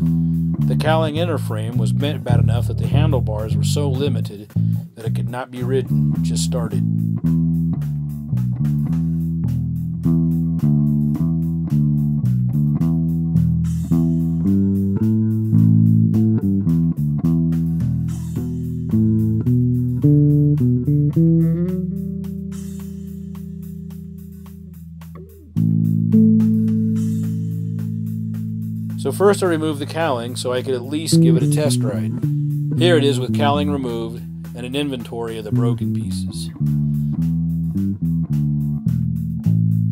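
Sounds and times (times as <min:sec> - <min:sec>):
bass guitar playing: 0:00.0 - 0:39.9.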